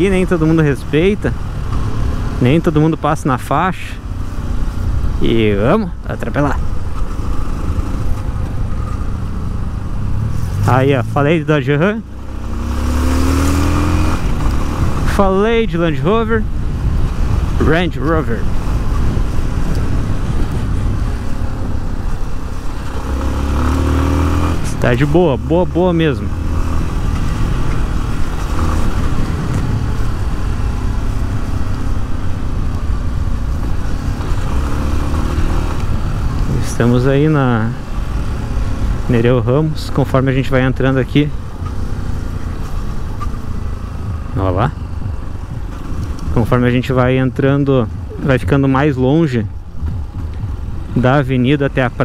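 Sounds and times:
motorcycle engine cruising: 0.0 - 52.0
road and wind noise: 0.0 - 52.0
motorcycle engine running: 41.0 - 52.0.

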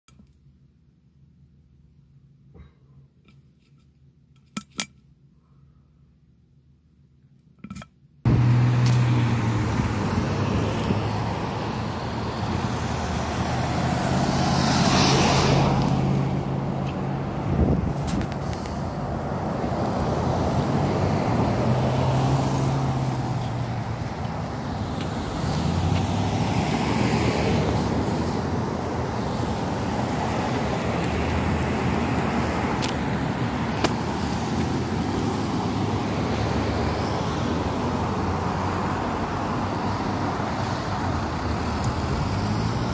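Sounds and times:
road traffic passing: 8.3 - 42.9.

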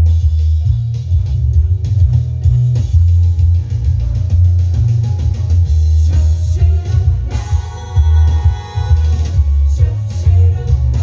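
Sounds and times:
loud bass line: 0.0 - 11.0.

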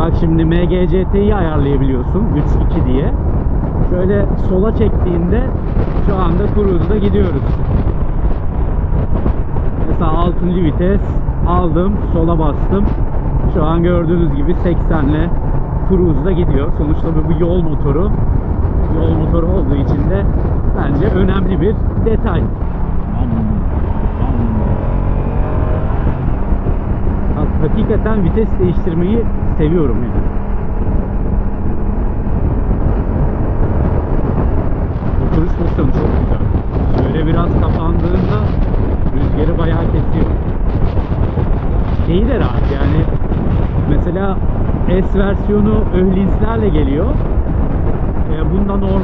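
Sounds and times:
motorcycle engine running: 0.0 - 49.0
tyres on road: 0.0 - 49.0
wind rush on microphone: 0.0 - 49.0.

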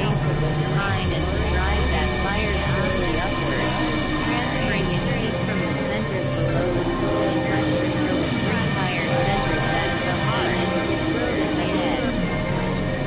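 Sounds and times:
low synthesizer drone: 0.0 - 13.0
warbling gliding synth tones: 0.0 - 13.0.

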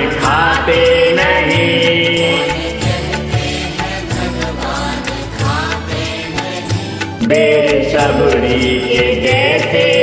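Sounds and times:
bass: 0.0 - 10.0
instrumental devotional backing track: 0.0 - 10.0
steady percussion beat: 0.0 - 10.0.

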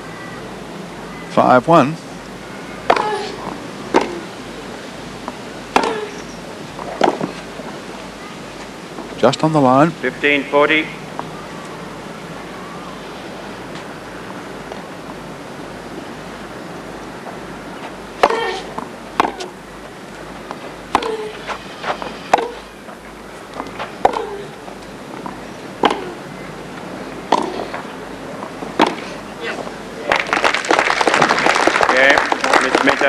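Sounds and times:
tennis ball bouncing: 2.8 - 4.3, 5.2 - 7.4, 17.8 - 19.6, 20.4 - 22.7, 23.5 - 26.3, 27.1 - 29.7
tennis racket striking ball: 2.9 - 4.3, 5.7 - 6.2, 6.9 - 7.4, 18.2 - 19.6, 20.9 - 21.4, 22.3 - 22.7, 24.0 - 24.4, 25.8 - 26.2, 27.3 - 27.9, 28.8 - 29.2.

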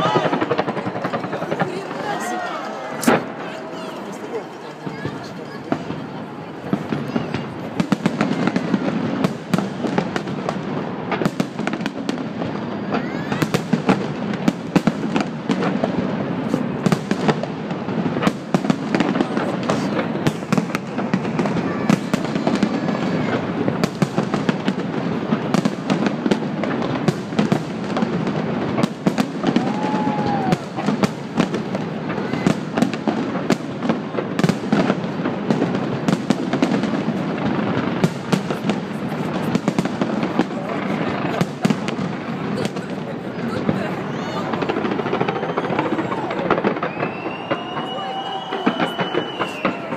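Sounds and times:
fireworks bursts and crackle: 0.0 - 49.9.

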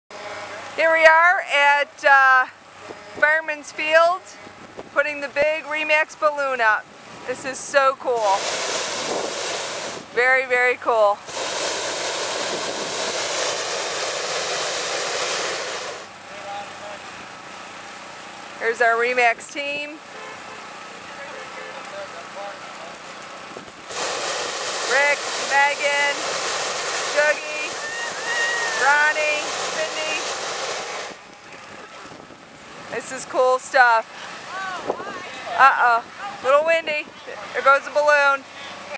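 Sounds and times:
propane burner hissing: 8.2 - 10.1, 11.2 - 16.1, 23.8 - 31.2.

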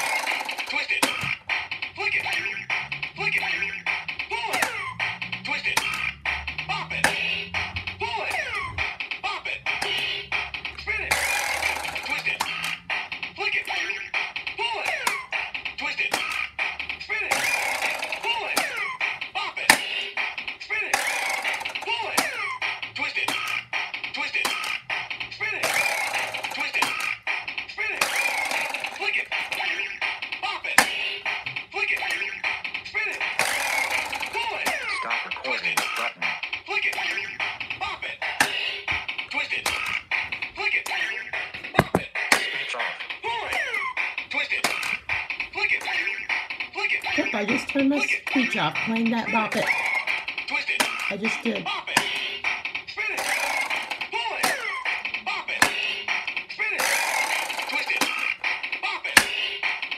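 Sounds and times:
electronic toy beat: 0.0 - 59.9
toy sound effects: 0.0 - 59.9
recorded voice calling commands: 34.5 - 38.3, 47.0 - 49.8, 51.0 - 51.9.

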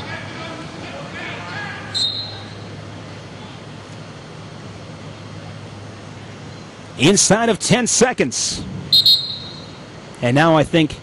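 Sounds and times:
crowd noise and voices: 0.0 - 4.0
referee whistle blast: 1.9 - 2.6, 8.9 - 9.8.

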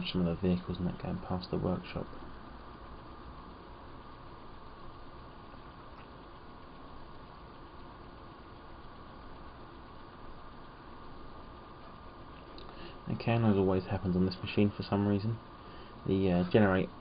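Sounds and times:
thin steady whine: 0.0 - 17.0.

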